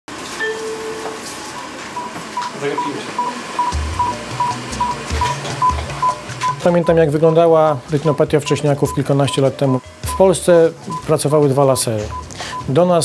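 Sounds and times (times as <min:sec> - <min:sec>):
patient monitor beeping: 0:00.4 - 0:12.8.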